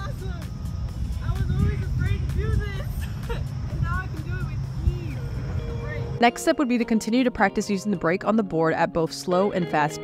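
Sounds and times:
low outdoor rumble: 0.0 - 6.3
light background music: 0.0 - 10.0.

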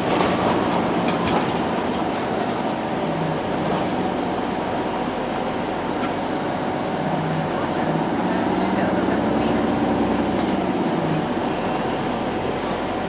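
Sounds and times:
streetcar running on rails: 0.0 - 13.0.

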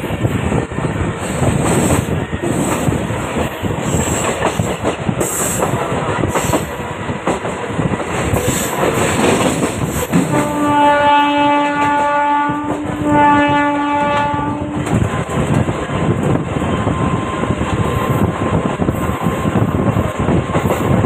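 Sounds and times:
train wheels clicking on rails: 0.0 - 13.1, 13.9 - 21.0
locomotive horn blast: 10.2 - 14.9.

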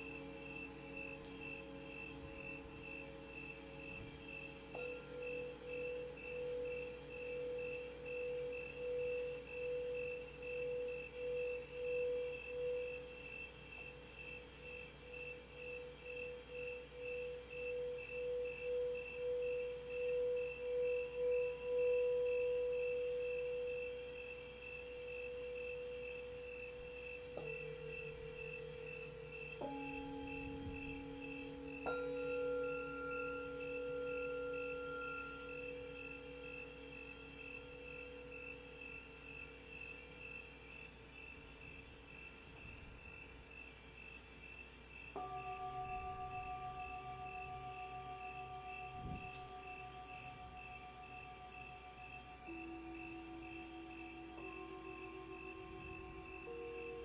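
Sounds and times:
singing bowl struck: 3.8 - 40.2, 45.2 - 57.0
singing bowl rimmed with mallet: 14.8 - 39.6, 45.2 - 57.0.

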